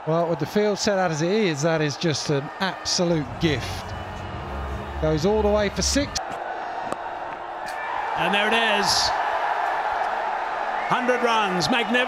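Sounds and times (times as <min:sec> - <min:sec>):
stadium crowd cheering and applauding: 0:00.0 - 0:12.0.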